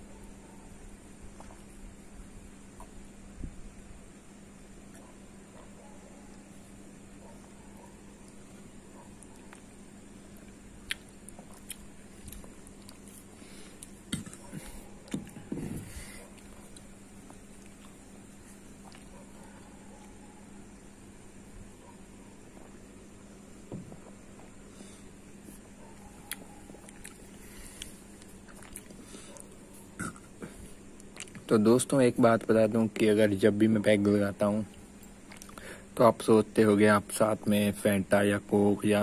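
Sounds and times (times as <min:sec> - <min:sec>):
person gulping a drink: 0:13.8 - 0:16.0, 0:26.3 - 0:31.5
throat sound: 0:14.1 - 0:16.3, 0:30.0 - 0:30.7.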